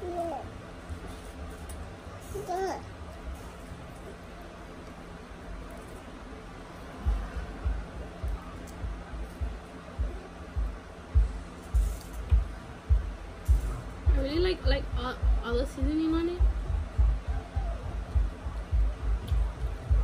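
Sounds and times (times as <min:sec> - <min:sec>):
low steady hum: 0:00.0 - 0:20.0
low dull thumps: 0:07.0 - 0:20.0.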